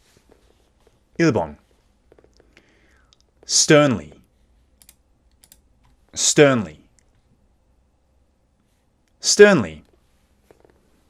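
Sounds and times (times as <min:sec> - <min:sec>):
computer keyboard clicks: 0:04.8 - 0:05.6.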